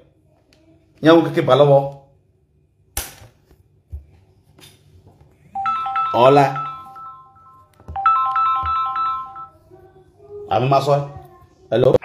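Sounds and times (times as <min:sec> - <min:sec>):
phone ringtone melody: 0:05.6 - 0:09.7.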